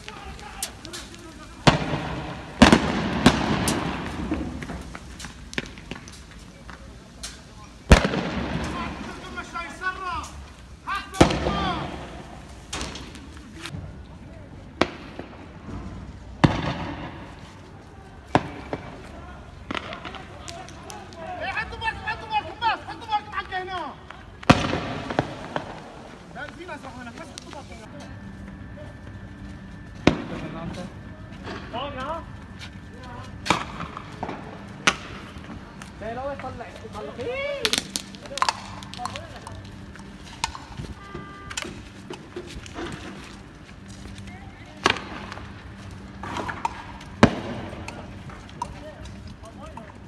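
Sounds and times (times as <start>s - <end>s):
men shouting: 0.0s - 1.7s, 8.7s - 12.2s
echoing gunshots: 1.4s - 4.8s, 7.9s - 9.4s, 11.2s - 13.1s, 16.4s - 17.3s, 24.5s - 26.0s
loud gunshot with echo: 1.6s - 4.5s, 7.9s - 9.1s.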